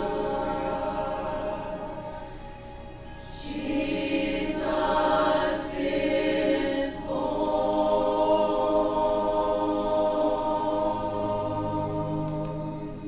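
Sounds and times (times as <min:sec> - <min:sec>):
mixed choir singing a hymn: 0:00.0 - 0:02.5, 0:03.2 - 0:13.0.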